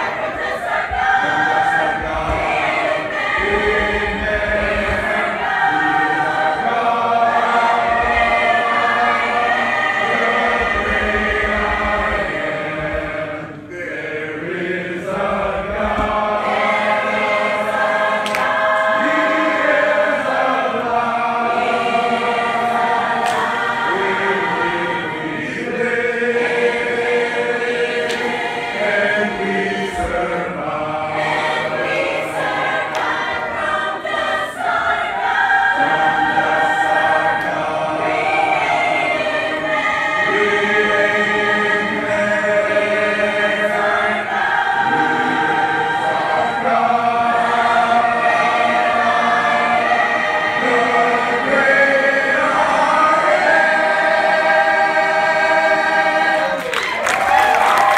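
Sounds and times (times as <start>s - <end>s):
congregation singing a hymn: 0.0s - 57.9s.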